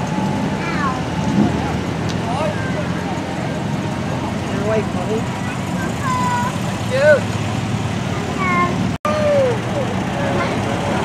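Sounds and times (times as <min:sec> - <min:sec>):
car engines running: 0:00.0 - 0:11.0
people chattering: 0:00.0 - 0:11.0.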